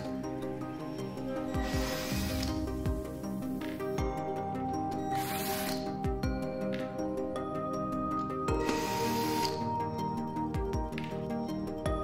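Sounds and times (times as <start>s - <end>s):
background music: 0.0s - 12.0s
cordless drill spinning: 1.5s - 2.8s, 5.1s - 5.8s, 8.6s - 9.6s.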